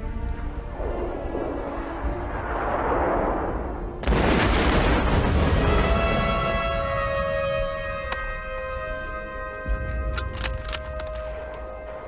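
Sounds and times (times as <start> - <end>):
low rumble: 0.0 - 6.3
explosions: 1.4 - 6.6.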